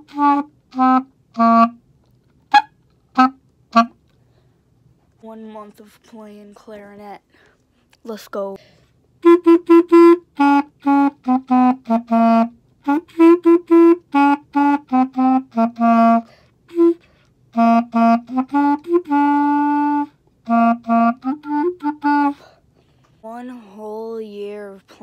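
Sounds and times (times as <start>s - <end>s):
clarinet playing a simple tune: 0.0s - 1.8s, 2.5s - 4.0s, 9.2s - 22.4s.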